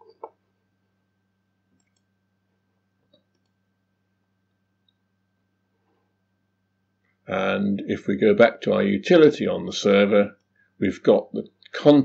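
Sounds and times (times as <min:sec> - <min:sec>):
low electrical hum: 0:00.0 - 0:12.0
faint computer mouse clicks: 0:01.8 - 0:02.1.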